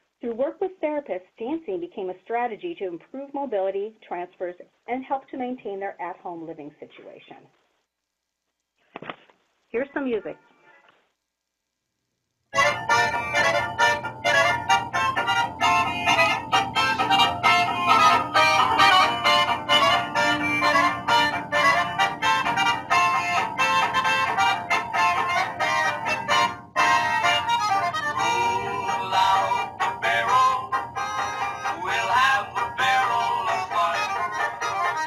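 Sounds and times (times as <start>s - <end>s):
polka dance music: 12.6s - 35.0s.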